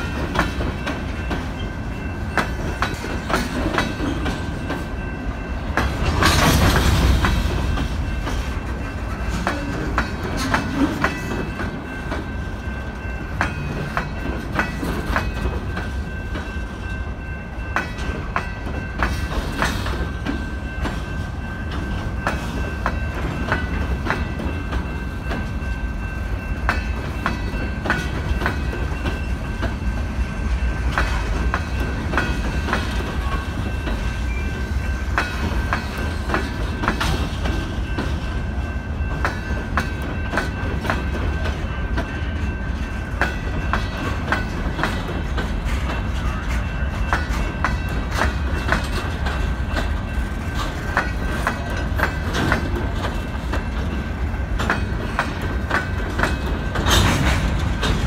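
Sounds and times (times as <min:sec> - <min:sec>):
freight cars low rumble: 0:00.0 - 0:58.0
steel wheels clicking over rail joints: 0:00.0 - 0:58.0.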